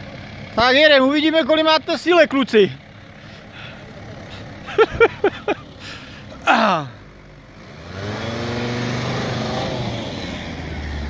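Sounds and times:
van engine running: 0.0s - 11.0s
person shouting: 6.4s - 7.0s.

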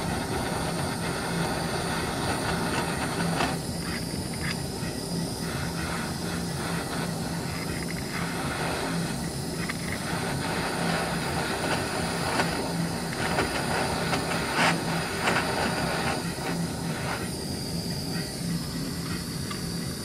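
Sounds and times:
gas torch flame hissing: 0.0s - 20.0s.

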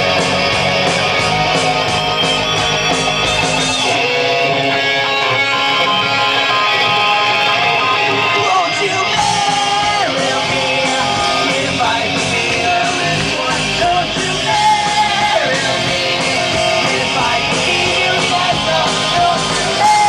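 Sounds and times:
bass and drums: 0.0s - 20.0s
electric guitars: 0.0s - 20.0s
rock band playing live: 0.0s - 20.0s.

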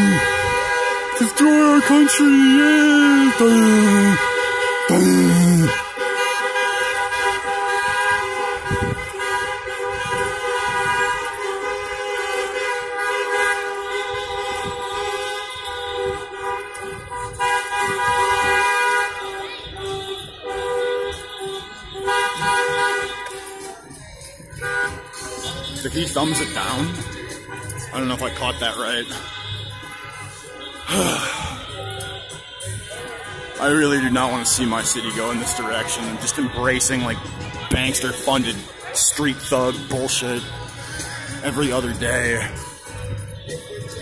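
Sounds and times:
car horns honking: 0.0s - 44.0s.

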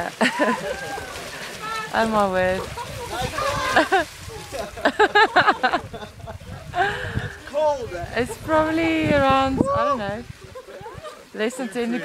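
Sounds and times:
person laughing: 0.2s - 1.1s, 2.8s - 7.3s.

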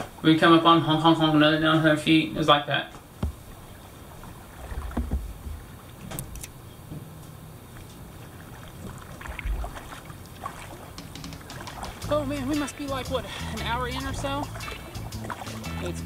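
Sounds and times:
water splashing with paddle strokes: 3.0s - 6.2s, 7.6s - 16.0s
low thumps: 3.2s - 3.6s.

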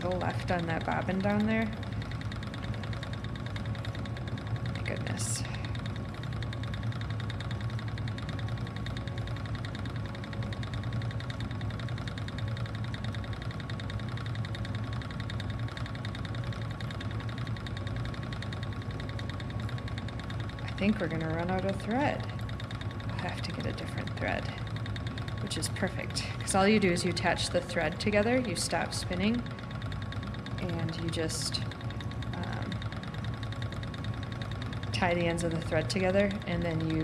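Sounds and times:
spinning wheel whirring: 0.0s - 37.0s.

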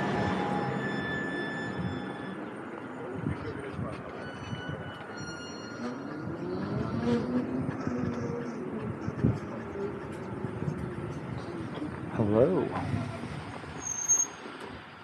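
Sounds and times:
tyre and wind noise: 3.0s - 15.0s.

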